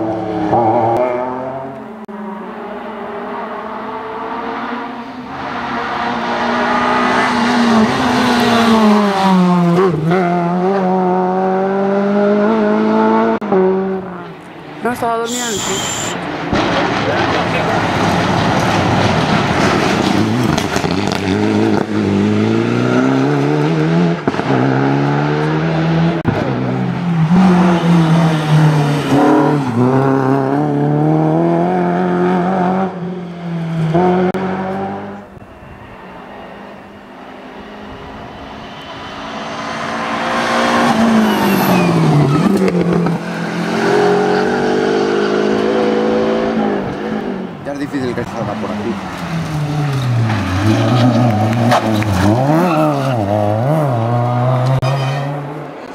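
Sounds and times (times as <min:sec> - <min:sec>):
rally car engine revving: 0:00.0 - 0:35.5, 0:36.1 - 0:55.9
second rally car engine: 0:00.0 - 0:55.9.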